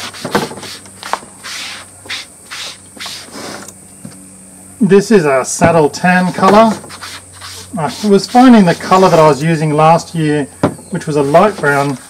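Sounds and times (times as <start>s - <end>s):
applicator rubbing leather: 0.0s - 3.7s, 6.2s - 9.4s, 11.0s - 12.0s.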